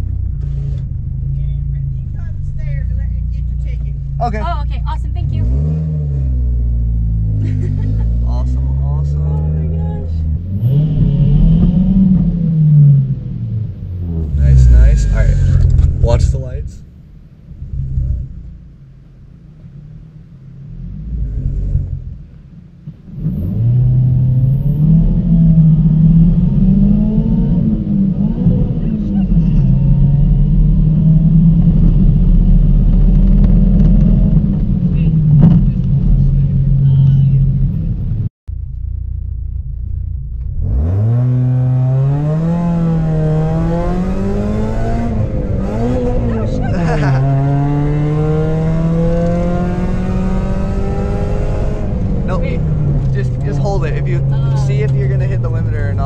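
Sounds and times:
car engine accelerating: 0:00.0 - 0:56.0.

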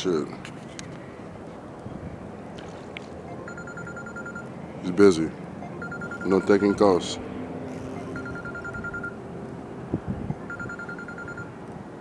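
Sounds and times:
outdoor background noise: 0:00.0 - 0:12.0
rapid trilling electronic beep: 0:03.3 - 0:04.5, 0:05.6 - 0:07.0, 0:07.7 - 0:09.2, 0:10.5 - 0:11.5.

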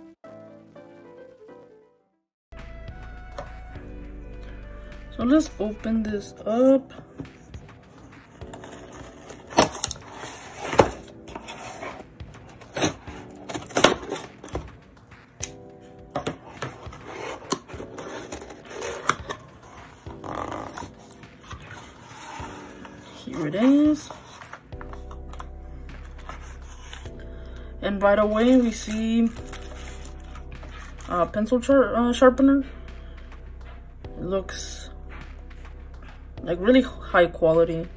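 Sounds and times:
background music: 0:00.0 - 0:37.9
scissors cutting cardboard tape: 0:08.4 - 0:14.7, 0:16.6 - 0:27.1
cardboard box scraping: 0:08.5 - 0:14.5, 0:16.7 - 0:25.2.

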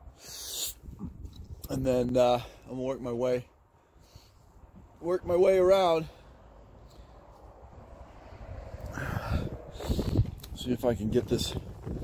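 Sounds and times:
wind rumbling on microphone: 0:00.0 - 0:02.1, 0:07.2 - 0:12.0.

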